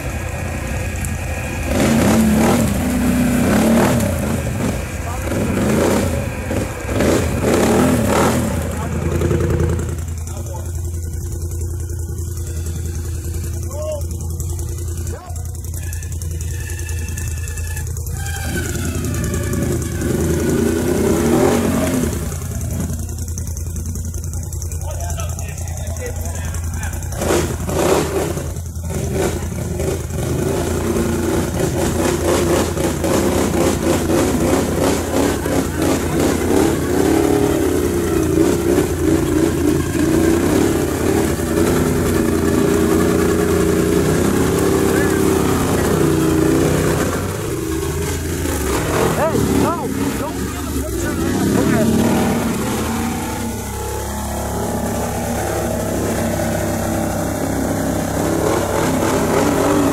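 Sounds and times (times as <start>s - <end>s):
engine revving under load: 0.0s - 59.9s.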